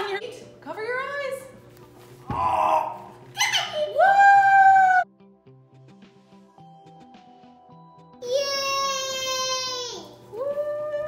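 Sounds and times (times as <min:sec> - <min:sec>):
pumpkin thumping on table: 0:02.3 - 0:02.6
soft background music: 0:04.6 - 0:11.0.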